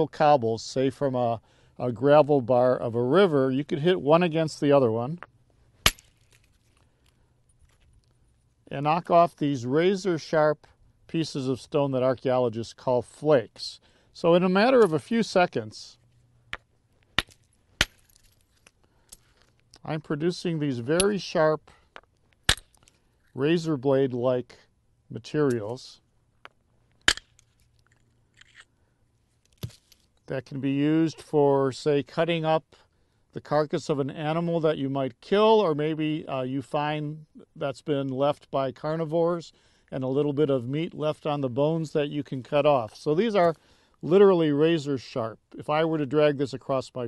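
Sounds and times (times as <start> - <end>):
stone-on-stone crack: 5.8 - 6.6, 17.2 - 18.7, 27.0 - 28.7.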